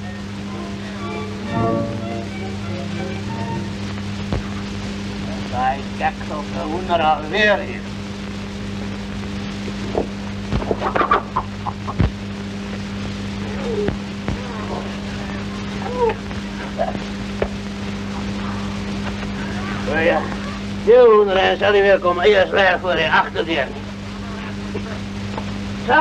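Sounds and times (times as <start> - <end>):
film soundtrack hum: 0.0 - 26.0.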